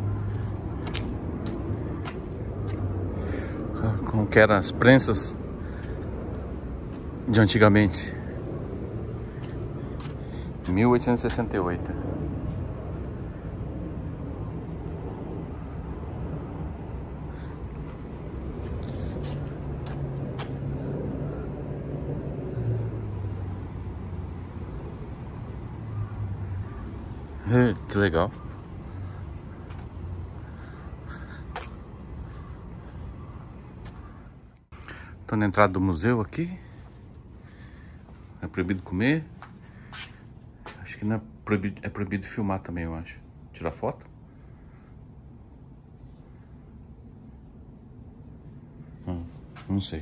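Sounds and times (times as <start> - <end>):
city background hum: 0.0 - 50.0.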